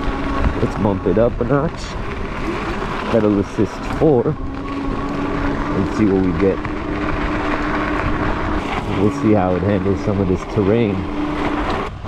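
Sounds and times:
electric motor whining: 0.0s - 12.0s
wind on microphone: 0.0s - 12.0s.

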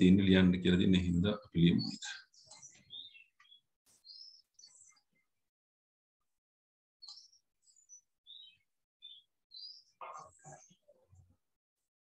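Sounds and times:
bird chirping: 0.0s - 5.5s, 7.0s - 11.5s.

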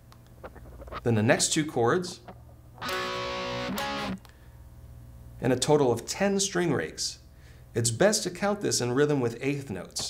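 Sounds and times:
electric guitar chords: 0.4s - 1.0s, 2.1s - 4.4s.

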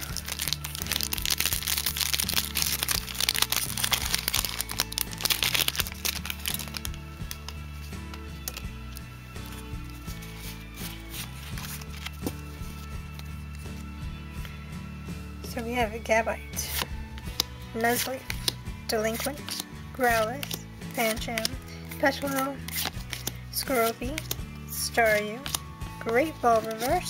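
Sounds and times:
foil wrapper crinkling and tearing: 0.0s - 7.6s, 8.4s - 13.6s, 19.2s - 24.4s, 25.3s - 25.6s
background music: 0.0s - 27.0s.

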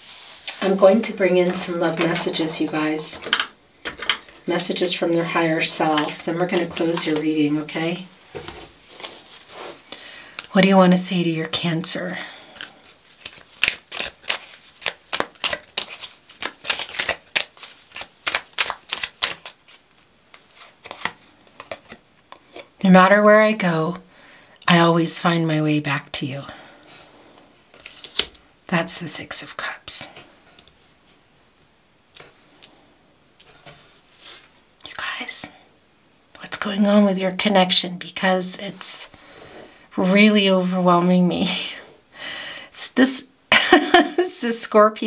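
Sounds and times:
cards rustling and tapping: 12.6s - 22.7s, 27.7s - 28.4s.

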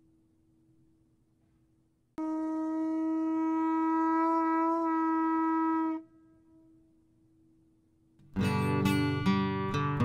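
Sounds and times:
conch-shell trumpet long note: 2.2s - 6.9s.

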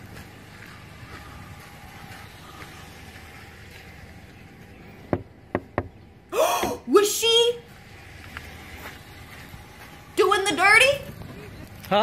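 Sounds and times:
knocks on a window: 5.1s - 5.9s.

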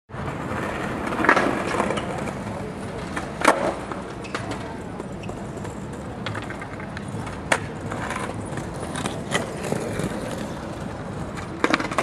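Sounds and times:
skateboard wheels rolling on tiles: 0.1s - 12.0s
skateboard clacks: 0.2s - 12.0s.

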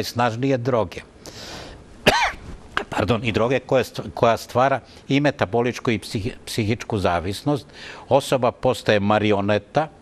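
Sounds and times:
man coughing: 2.0s - 2.4s.

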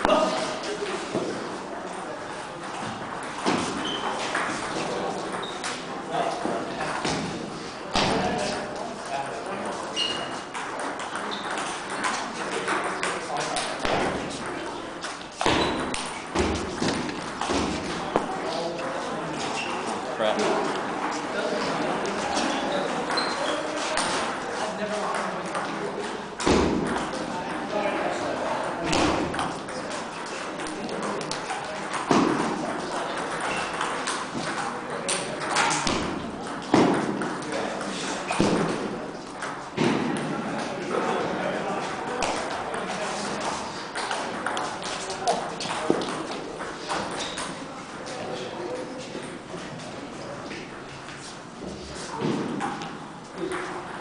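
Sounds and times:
background chatter: 0.0s - 54.0s
table tennis balls clicking: 2.7s - 5.9s, 10.0s - 18.9s, 28.6s - 40.3s, 43.8s - 47.7s.

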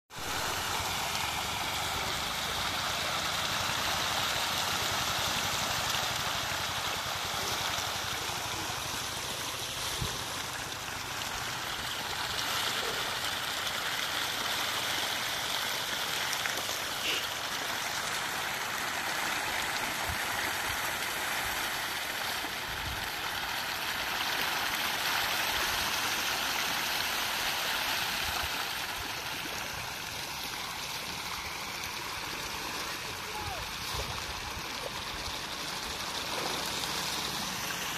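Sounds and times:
fish splashing at water surface: 0.2s - 37.9s.

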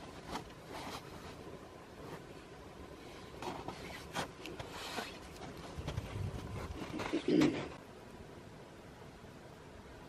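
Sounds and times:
bird cooing: 6.8s - 7.8s.

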